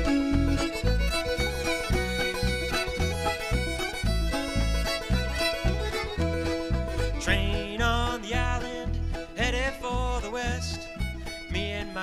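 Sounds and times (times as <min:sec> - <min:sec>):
button accordion: 0:00.0 - 0:07.2
banjo: 0:00.0 - 0:12.0
fiddle: 0:00.0 - 0:12.0
upright bass: 0:00.0 - 0:12.0.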